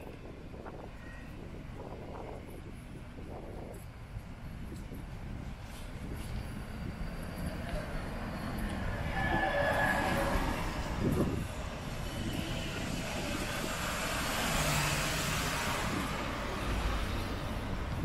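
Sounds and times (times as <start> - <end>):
vehicles passing: 5.3 - 18.0.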